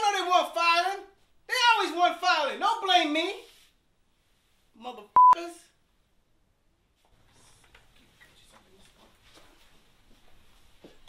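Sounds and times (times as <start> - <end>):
man speaking: 0.0 - 3.5, 4.8 - 5.7
censor bleep: 5.2 - 5.4.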